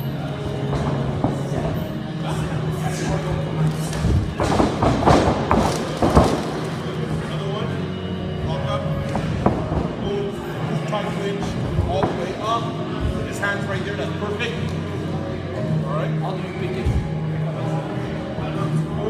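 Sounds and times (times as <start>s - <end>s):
background music: 0.0s - 19.0s
voices: 0.0s - 19.0s.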